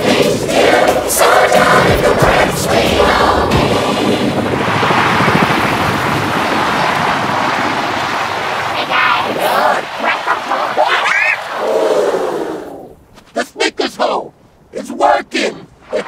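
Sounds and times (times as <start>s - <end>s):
crowd cheering: 0.0s - 12.9s
people shouting and whooping: 8.3s - 13.0s.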